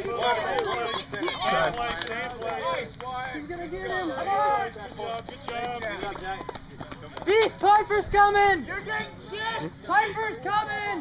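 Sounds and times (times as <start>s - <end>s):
runners' footfalls on track: 4.8s - 8.0s.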